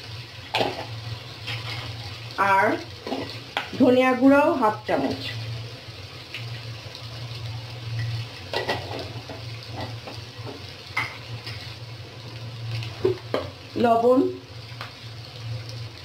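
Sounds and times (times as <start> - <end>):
vegetables frying with sizzle: 0.0 - 16.0.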